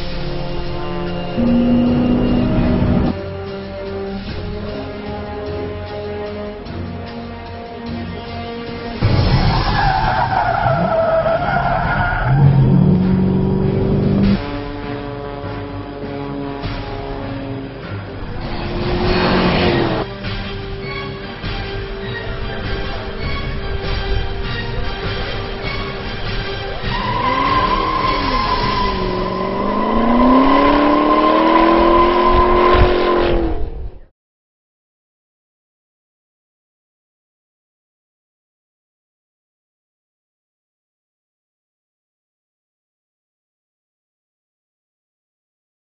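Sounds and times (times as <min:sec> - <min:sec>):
car engine revving: 0:01.1 - 0:03.2, 0:11.7 - 0:20.1, 0:26.7 - 0:33.8
tyres squealing: 0:26.7 - 0:32.3.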